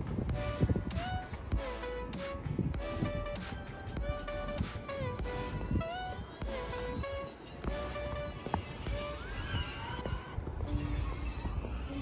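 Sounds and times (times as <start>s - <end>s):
background music with sliding tones: 0.0s - 12.0s
wind rumble on microphone: 0.0s - 12.0s.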